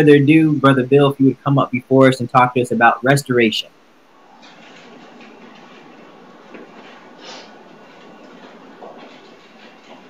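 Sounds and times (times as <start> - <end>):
room noise and hiss: 0.0 - 10.0.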